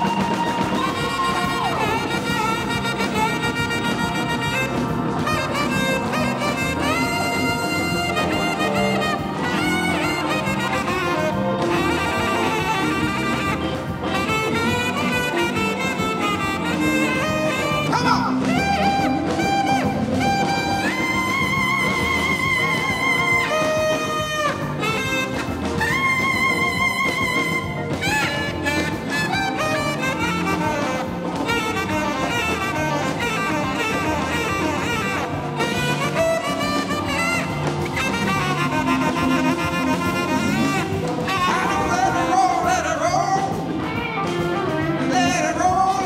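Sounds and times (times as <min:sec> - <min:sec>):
live blues band playing: 0:00.0 - 0:46.0
tenor saxophone solo: 0:00.0 - 0:46.0.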